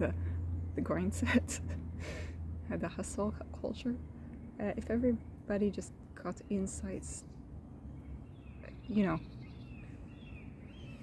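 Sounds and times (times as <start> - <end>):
low outdoor rumble: 0.0 - 11.0
faint bird chirps: 7.9 - 11.0.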